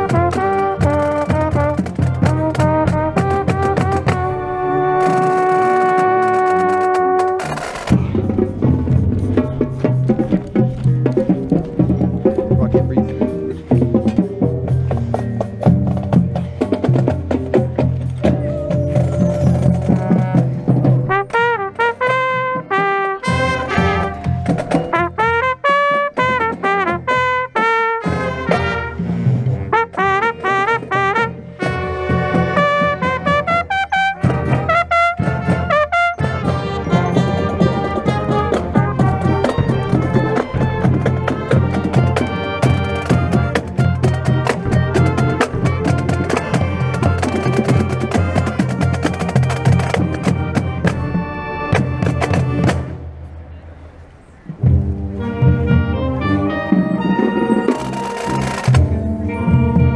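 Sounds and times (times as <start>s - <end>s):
trumpet melody with quick runs: 0.0s - 8.6s, 19.8s - 52.9s, 55.2s - 59.9s
marching band playing: 0.0s - 53.9s, 54.5s - 59.9s
drums: 0.0s - 59.9s.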